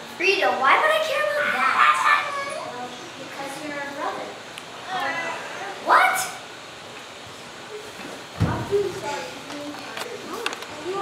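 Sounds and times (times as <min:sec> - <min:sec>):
children's voices: 0:00.2 - 0:06.5, 0:07.7 - 0:11.0.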